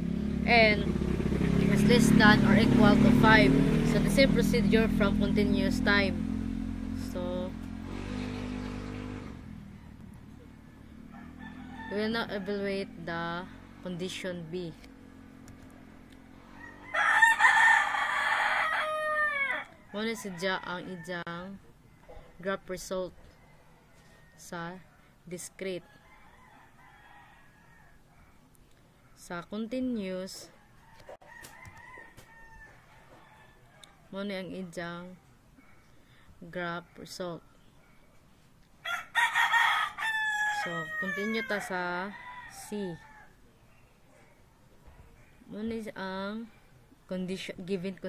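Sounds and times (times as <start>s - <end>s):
rooster crowing: 9.5s - 12.9s, 16.4s - 22.1s, 25.9s - 28.4s, 30.6s - 34.1s, 38.8s - 43.4s.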